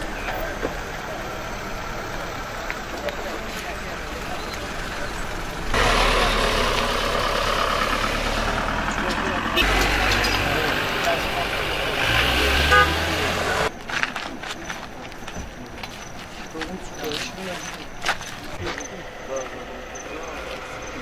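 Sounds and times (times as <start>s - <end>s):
people talking: 0.0s - 21.0s
vehicle engines running: 0.0s - 21.0s.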